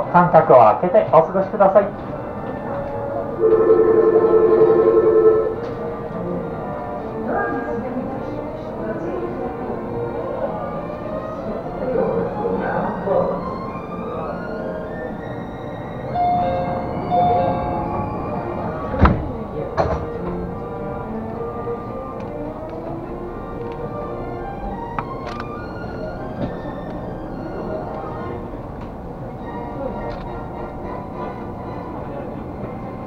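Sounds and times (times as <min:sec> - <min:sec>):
monorail car humming: 0:00.0 - 0:33.0
two-note electronic signal tone: 0:03.4 - 0:05.7.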